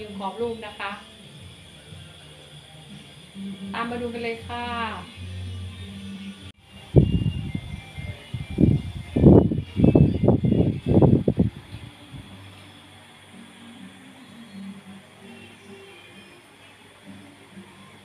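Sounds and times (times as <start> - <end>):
faint background music: 0.0 - 18.0.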